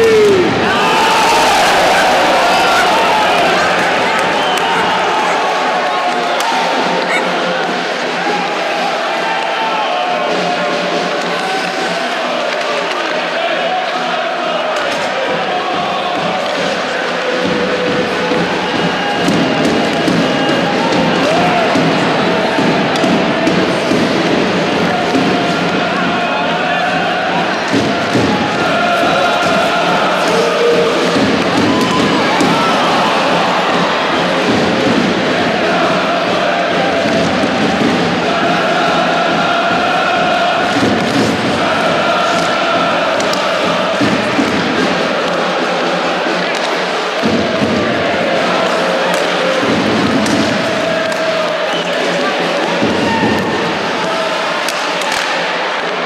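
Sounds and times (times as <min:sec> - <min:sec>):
crowd noise: 0:00.0 - 0:56.0
crowd singing and chanting: 0:00.0 - 0:56.0.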